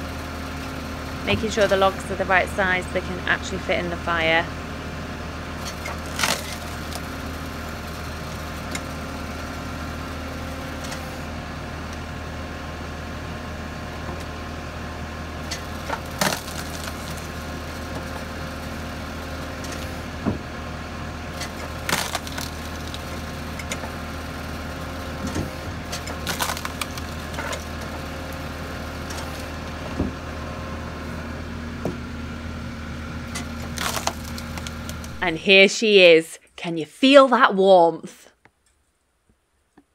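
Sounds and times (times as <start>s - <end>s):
engine hum: 0.0s - 36.2s
logs cracking and splintering: 5.6s - 9.4s, 15.5s - 20.1s, 21.3s - 29.6s, 33.3s - 35.2s.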